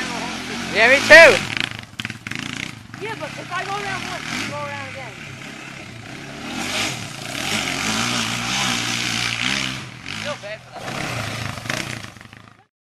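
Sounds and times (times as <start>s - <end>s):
quad engine revving: 0.0s - 12.7s.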